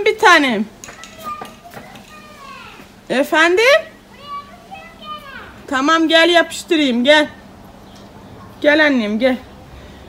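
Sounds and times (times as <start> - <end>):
girl calling and talking: 0.0 - 7.4.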